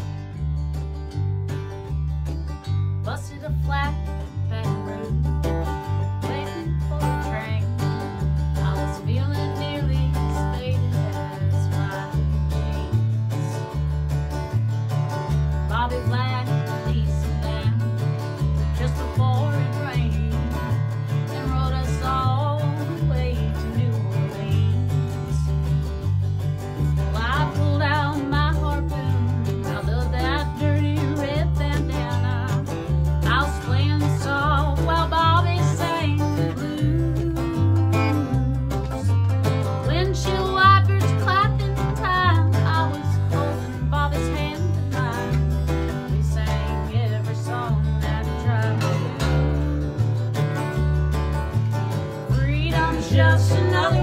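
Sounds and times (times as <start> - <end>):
low bass notes: 0.0 - 54.0
strummed acoustic guitar: 0.0 - 54.0
woman singing: 3.0 - 14.0, 15.5 - 25.8, 26.8 - 49.9, 52.1 - 54.0.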